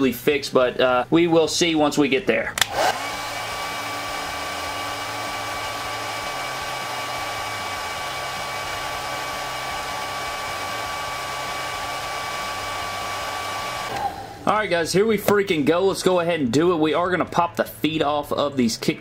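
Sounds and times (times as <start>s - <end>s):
hair dryer running: 2.6s - 14.4s.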